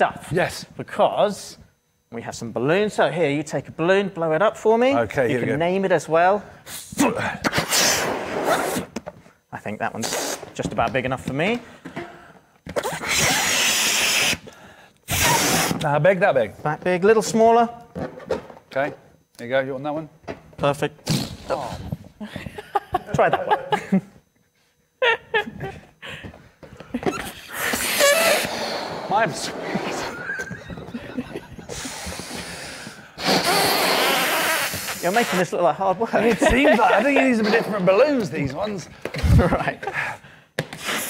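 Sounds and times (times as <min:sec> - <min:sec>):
person blowing up balloon: 0:07.4 - 0:08.9, 0:10.0 - 0:10.5, 0:12.7 - 0:15.8, 0:21.0 - 0:21.8, 0:27.1 - 0:30.9, 0:31.6 - 0:35.4, 0:40.6 - 0:41.0.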